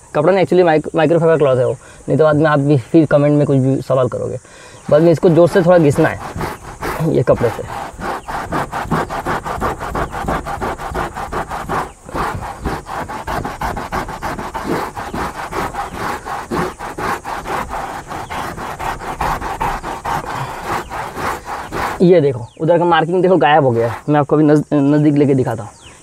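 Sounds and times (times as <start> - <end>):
cloth scrubbing fabric: 4.8 - 22.2, 23.4 - 24.1.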